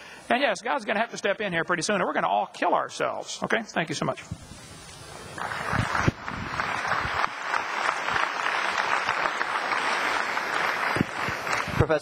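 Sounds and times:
audience applauding: 5.4s - 12.0s.

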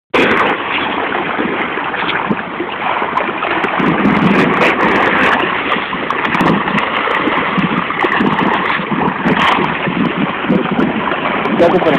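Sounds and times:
water sloshing and lapping: 0.2s - 11.9s.

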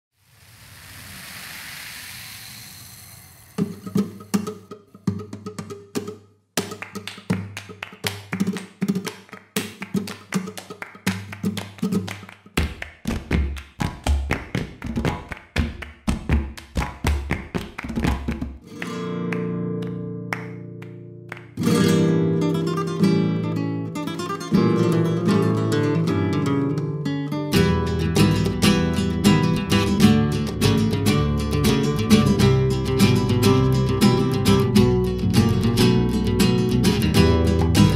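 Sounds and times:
flamenco acoustic guitar: 3.6s - 37.9s
bass notes: 27.6s - 37.9s.

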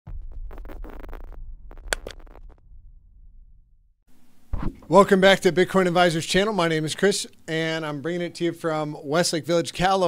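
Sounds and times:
low rumble: 0.0s - 4.1s
stuttering digital glitch noise: 0.3s - 2.5s.

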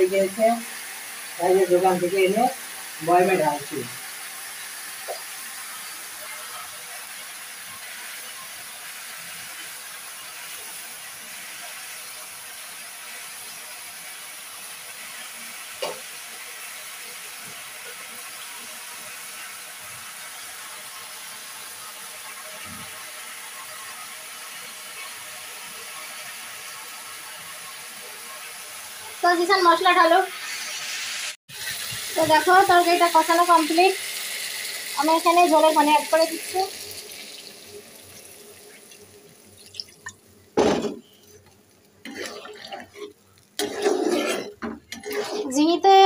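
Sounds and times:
food sizzling in a pan: 0.0s - 46.0s.

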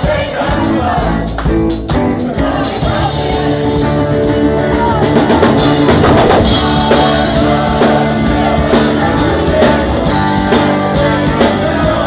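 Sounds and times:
drum kit beat: 0.0s - 12.0s
lead singer singing: 0.0s - 12.0s
live rock band playing: 0.0s - 12.0s.

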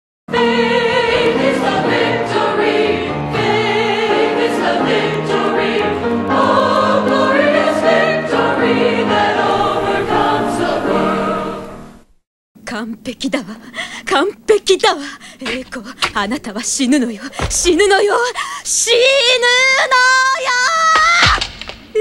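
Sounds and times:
choir singing with vibrato: 0.3s - 12.1s.

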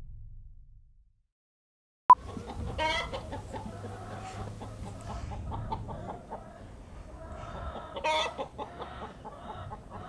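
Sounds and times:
hens clucking: 2.1s - 10.0s.

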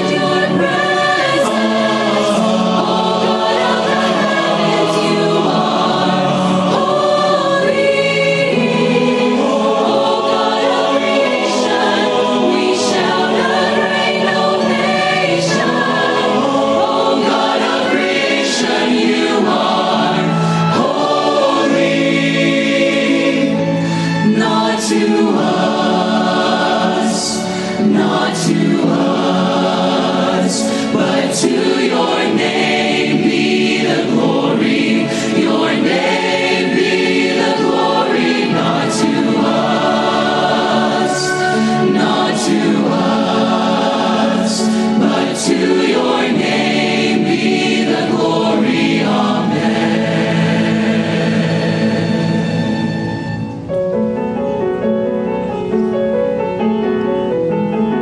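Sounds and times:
choir and soloists singing: 0.0s - 53.8s.

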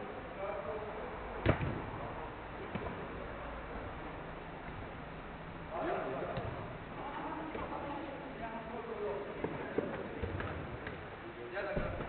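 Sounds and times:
football struck hard: 1.4s - 2.0s, 11.8s - 12.0s.

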